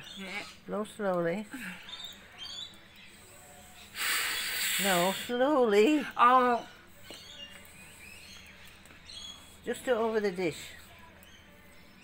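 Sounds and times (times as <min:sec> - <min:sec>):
faint birds chirping: 0:00.0 - 0:12.0.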